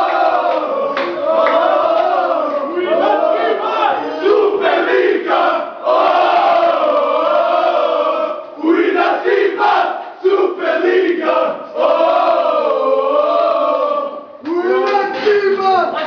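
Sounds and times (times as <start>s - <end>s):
group chanting and singing: 0.0s - 16.0s.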